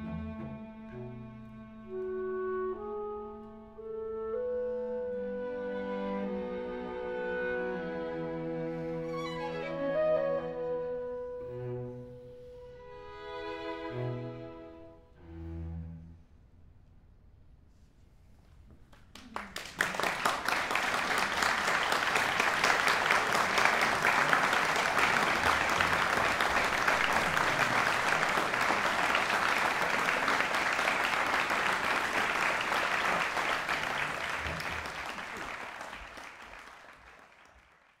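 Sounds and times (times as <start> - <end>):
audience applauding: 19.0 - 38.0.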